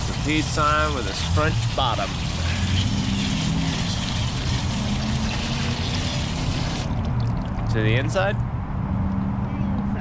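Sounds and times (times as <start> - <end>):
garden hose water running: 0.0 - 7.8
water dripping into a tub: 6.8 - 7.7.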